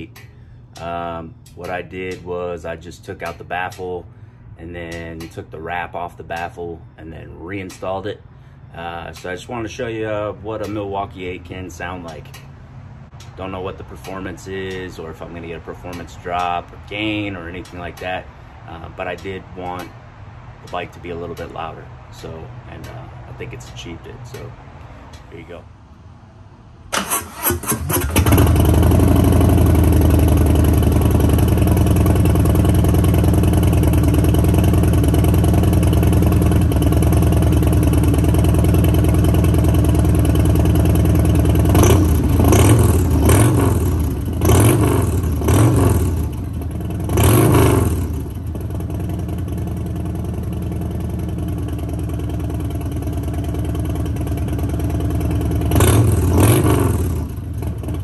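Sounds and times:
motorcycle throttle blips: 0.0 - 25.7, 26.9 - 58.0
motorcycle engine idling: 28.0 - 58.0.

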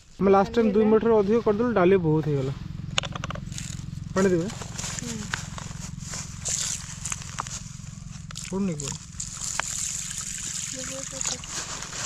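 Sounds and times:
low hum: 0.0 - 11.5.

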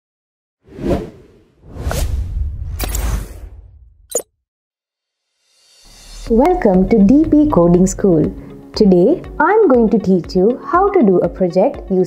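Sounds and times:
low rumble: 5.9 - 8.4.

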